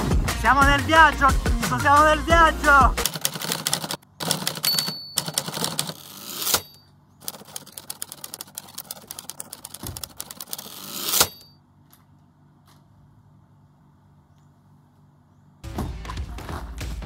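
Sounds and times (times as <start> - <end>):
typewriter keystroke clacks: 3.0 - 6.7, 7.3 - 11.4
typewriter bell ding: 4.5 - 6.9, 11.1 - 11.6.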